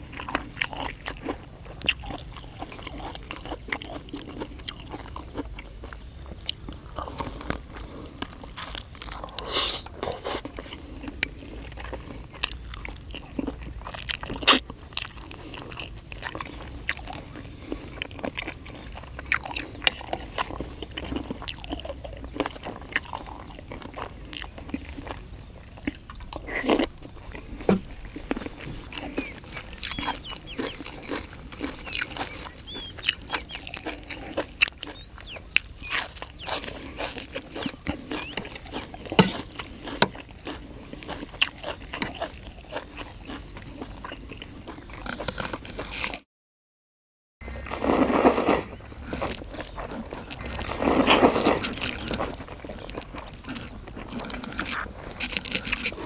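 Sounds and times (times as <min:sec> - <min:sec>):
man chewing chicken: 0:00.0 - 0:46.2, 0:47.4 - 0:56.0.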